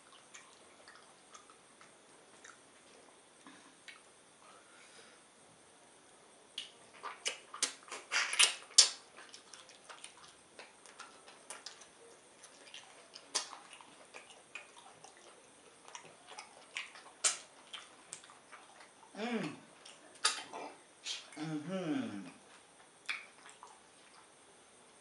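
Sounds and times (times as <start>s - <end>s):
wet mouth eating sounds: 0.0s - 4.1s, 6.6s - 24.4s
hummed mmm: 6.5s - 24.3s.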